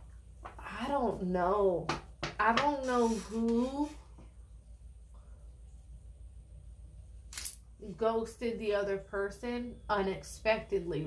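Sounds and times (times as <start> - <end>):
low steady hum: 0.0 - 11.0
woman speaking: 0.6 - 4.0, 7.8 - 11.0.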